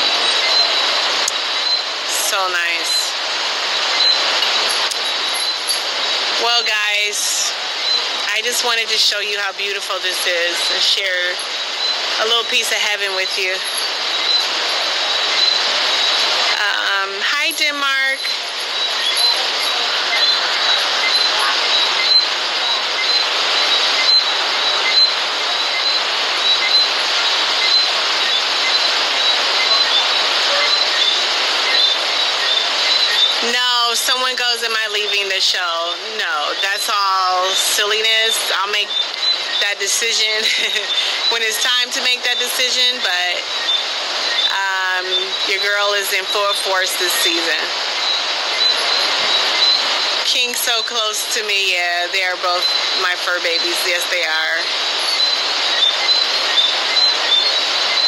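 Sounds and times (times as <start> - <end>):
ocean surf: 0.0 - 58.0.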